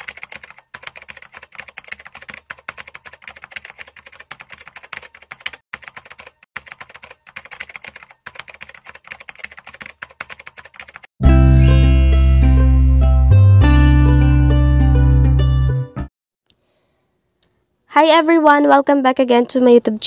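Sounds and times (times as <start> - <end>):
computer keyboard typing: 0.0 - 11.1.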